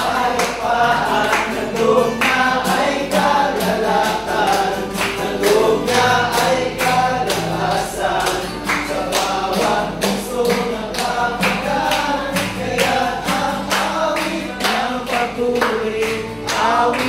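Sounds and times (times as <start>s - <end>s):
acoustic guitar: 0.0s - 17.0s
men singing together: 0.0s - 17.0s
rhythmic hand clapping: 0.0s - 17.0s.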